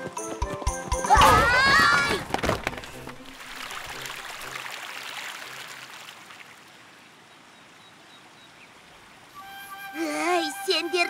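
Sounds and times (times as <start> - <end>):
running water rushing: 1.1 - 11.0
faint background music: 9.3 - 11.0.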